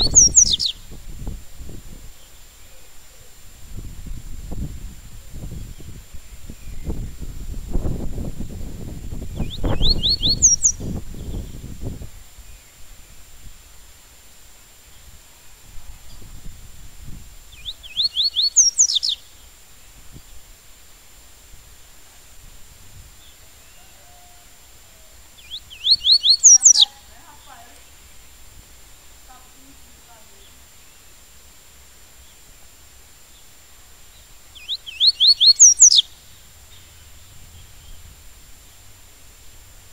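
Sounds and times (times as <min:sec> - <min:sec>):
small bird singing: 0:00.0 - 0:13.6, 0:16.0 - 0:20.5, 0:23.1 - 0:28.4, 0:29.3 - 0:31.3, 0:33.2 - 0:39.1
low rumbling noise: 0:36.1 - 0:39.9.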